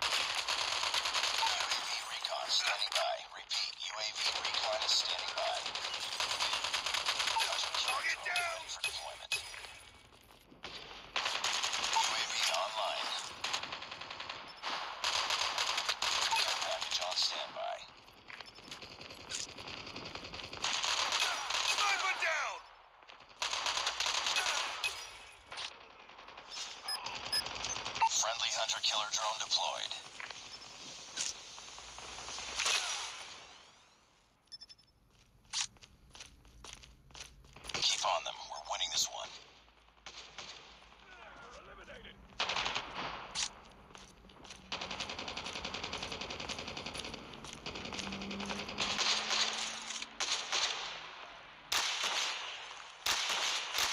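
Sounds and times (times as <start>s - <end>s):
video game automatic gunfire: 0.0s - 3.1s, 4.2s - 9.2s, 10.6s - 17.8s, 18.6s - 22.2s, 23.1s - 28.0s, 31.4s - 33.6s, 42.2s - 53.9s.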